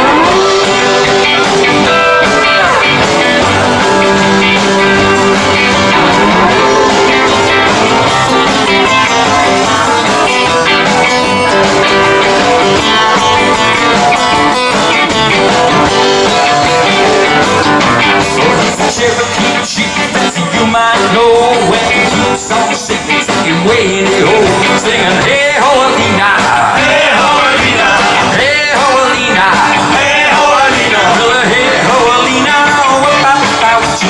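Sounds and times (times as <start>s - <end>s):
rhythm guitars: 0.0s - 34.0s
steel guitar: 0.0s - 34.0s.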